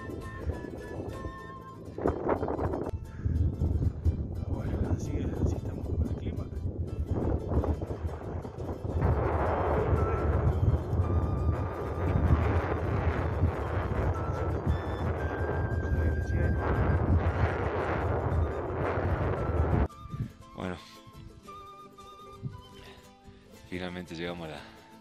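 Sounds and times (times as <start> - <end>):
wind buffeting microphone: 0.0 - 20.4
faint background music: 20.0 - 23.0, 23.6 - 25.0.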